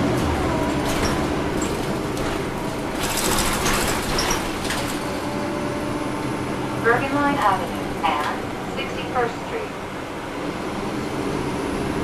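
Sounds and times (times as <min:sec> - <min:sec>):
bus diesel engine running: 0:00.0 - 0:12.0.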